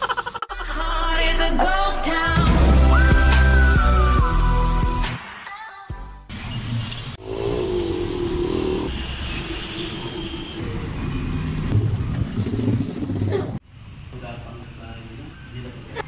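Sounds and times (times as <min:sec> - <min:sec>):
road traffic: 0:06.3 - 0:16.0.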